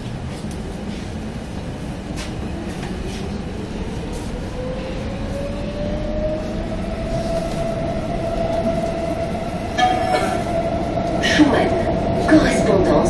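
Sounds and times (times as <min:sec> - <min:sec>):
passengers talking: 0:00.0 - 0:13.0
train wheels rumbling on rail: 0:00.0 - 0:13.0.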